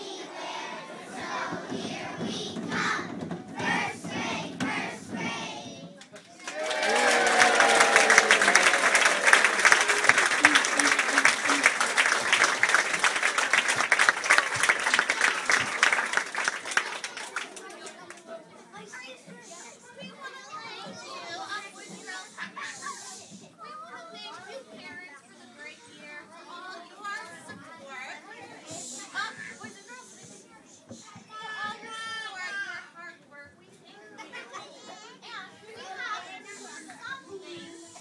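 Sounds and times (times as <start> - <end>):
young children chattering: 0.0 - 6.5, 8.4 - 38.0.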